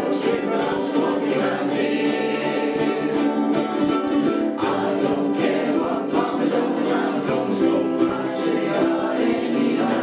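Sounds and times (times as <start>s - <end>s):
men and women singing together: 0.0s - 10.0s
ukuleles strumming: 0.0s - 10.0s.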